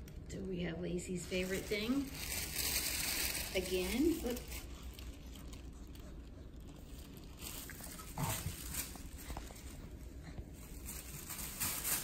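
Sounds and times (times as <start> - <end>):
thin paper rustling: 1.3 - 12.0.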